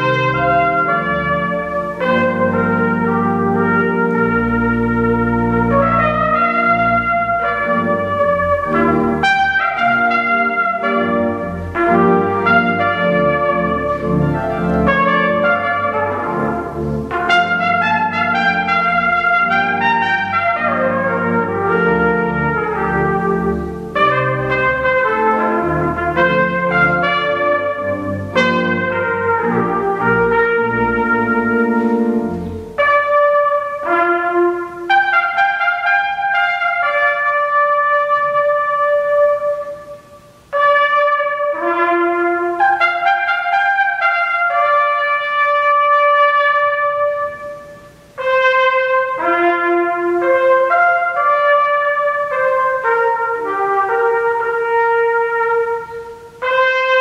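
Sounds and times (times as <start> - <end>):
pipe organ chords: 0.0 - 57.0
trumpet playing a melody: 0.0 - 57.0.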